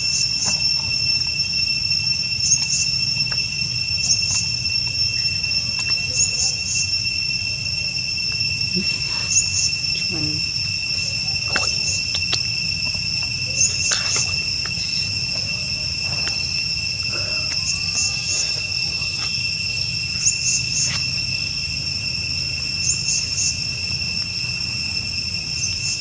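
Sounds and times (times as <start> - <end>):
insect chirps: 0.0 - 26.0
insects ringing: 0.0 - 26.0.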